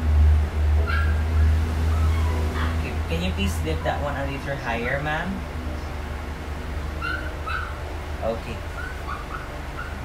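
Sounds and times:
low steady hum: 0:00.0 - 0:10.0
high-pitched animal calls: 0:00.8 - 0:03.0, 0:07.0 - 0:07.8, 0:08.7 - 0:10.0.

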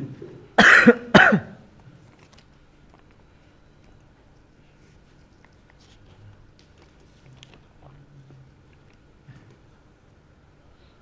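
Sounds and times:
person coughing: 0:00.6 - 0:01.7.

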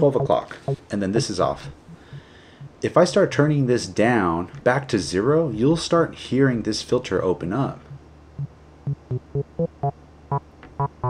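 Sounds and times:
synthesizer bass pattern: 0:00.0 - 0:00.8, 0:01.6 - 0:02.8, 0:08.9 - 0:10.0.

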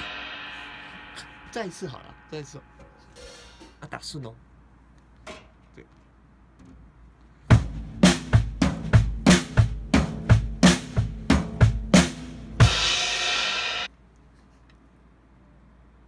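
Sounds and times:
cymbal crash: 0:00.0 - 0:03.8, 0:12.6 - 0:13.9
drum hits: 0:00.0 - 0:03.8, 0:07.5 - 0:13.9.

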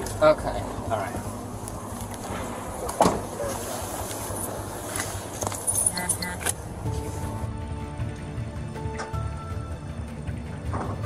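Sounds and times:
keys jingling: 0:04.2 - 0:06.6.

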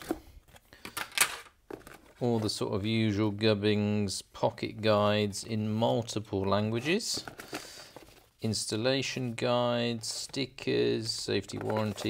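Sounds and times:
cardboard and paper rustling: 0:01.7 - 0:02.6, 0:06.7 - 0:08.4, 0:11.0 - 0:12.0.

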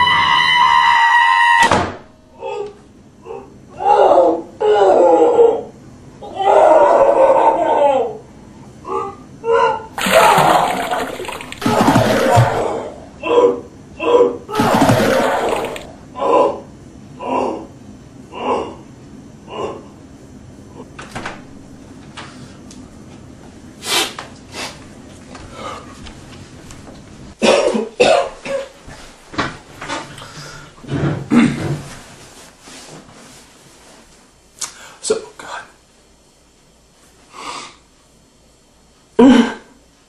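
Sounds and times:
man retching: 0:10.0 - 0:12.8
wet vomiting splatter: 0:10.0 - 0:12.9, 0:14.5 - 0:15.9
man gagging and heaving: 0:10.0 - 0:13.1, 0:14.5 - 0:16.0.

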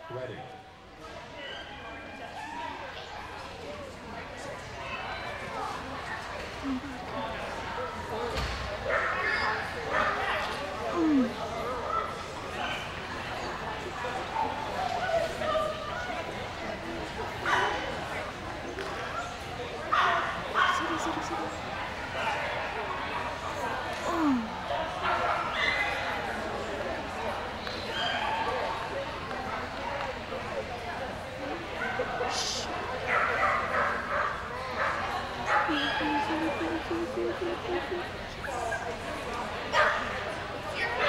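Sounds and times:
dog barking: 0:33.1 - 0:36.0
background voices: 0:35.7 - 0:38.4.

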